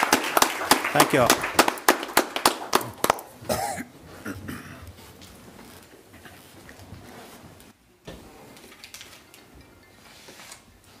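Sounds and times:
applause: 0.0s - 3.4s.

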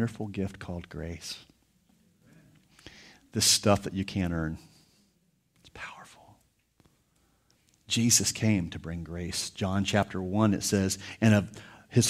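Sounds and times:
person whispering: 5.5s - 6.5s.

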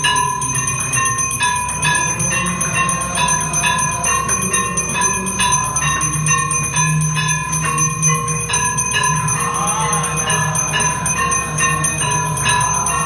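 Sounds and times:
low steady drone: 0.0s - 13.0s
temple bells ringing: 0.0s - 13.0s.

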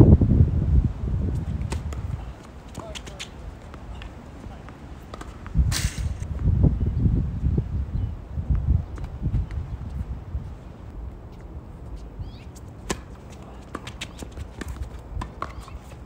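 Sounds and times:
tennis ball hits and bounces: 1.6s - 6.3s, 12.8s - 16.0s.

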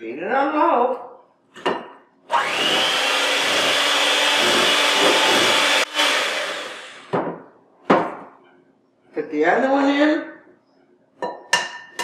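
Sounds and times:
electric hand mixer running: 2.3s - 7.1s.

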